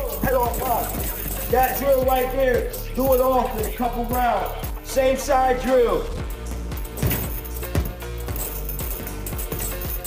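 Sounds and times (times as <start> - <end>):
background music: 0.0 - 10.0
chains clinking: 0.0 - 10.0
punches on heavy bag: 7.0 - 8.0.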